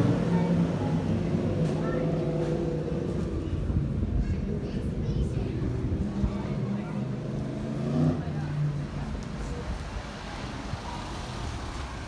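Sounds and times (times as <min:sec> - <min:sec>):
steady low rumble: 0:00.0 - 0:07.6
indistinct voices of passers-by: 0:00.0 - 0:12.0.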